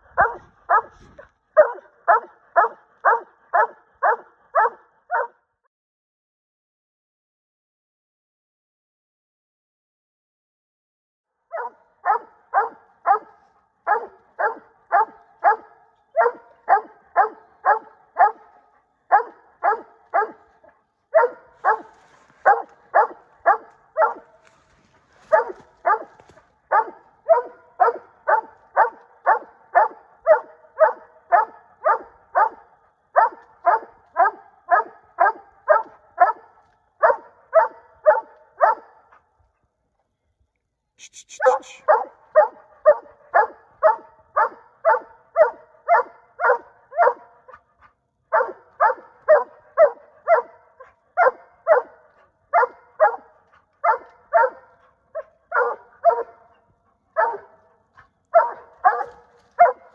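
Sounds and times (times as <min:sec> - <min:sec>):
dog barking: 0:00.0 - 0:05.5, 0:11.5 - 0:39.5, 0:41.0 - 0:59.9.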